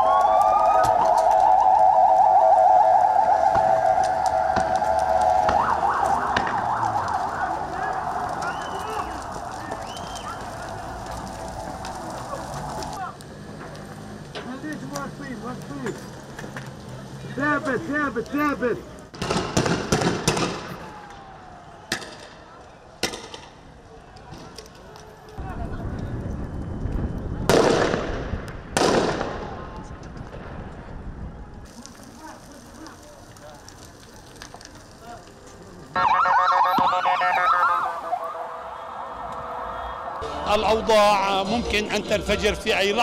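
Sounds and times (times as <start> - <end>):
ambulance siren yelping: 0.0 - 13.0, 35.9 - 41.0.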